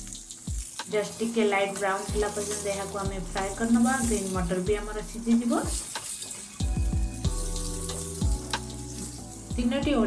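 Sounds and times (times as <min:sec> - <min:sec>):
soft background music: 0:00.0 - 0:10.0
vegetables sizzling in oil: 0:00.0 - 0:10.0.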